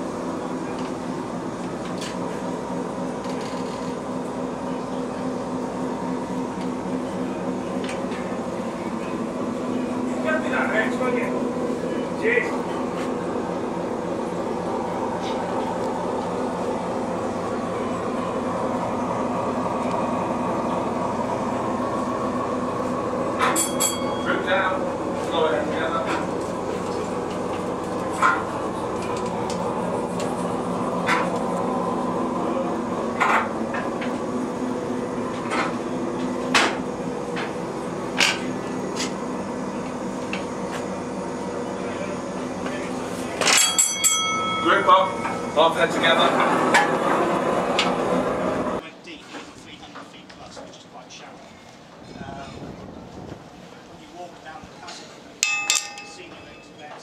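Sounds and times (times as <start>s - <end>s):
engine room machinery drone: 0.0s - 57.0s.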